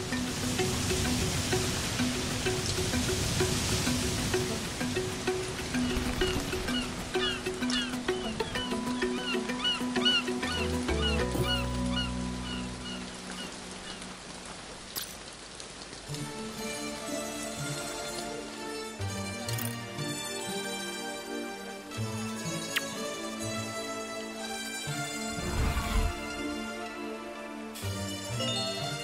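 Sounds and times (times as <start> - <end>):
breaking surf: 25.2 - 26.6.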